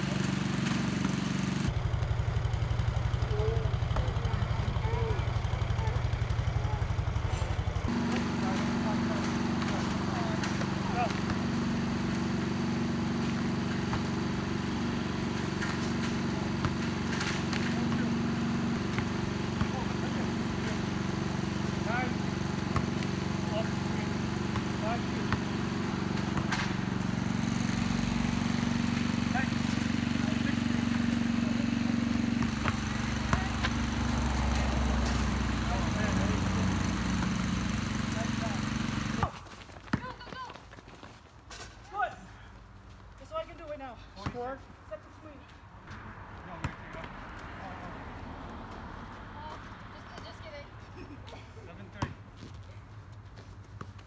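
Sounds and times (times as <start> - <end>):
low motor hum: 0.0 - 39.4
basketball bouncing on asphalt: 0.6 - 2.1, 5.6 - 41.4, 42.8 - 50.7, 51.9 - 54.0
players calling out: 7.9 - 40.7.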